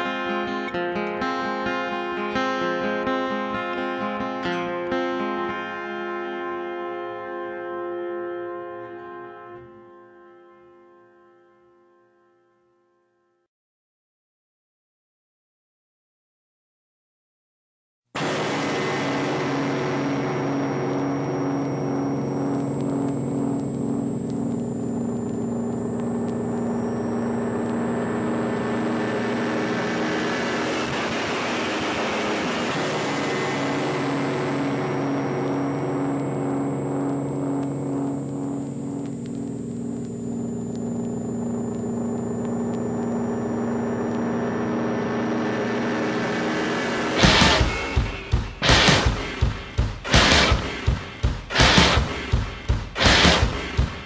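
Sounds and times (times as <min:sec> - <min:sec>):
buzzing low drone chord: 0:18.2 - 0:54.0.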